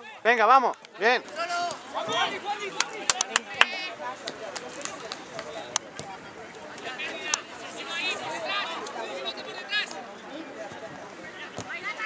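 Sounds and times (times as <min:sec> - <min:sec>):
open-air background noise: 0:00.0 - 0:12.0.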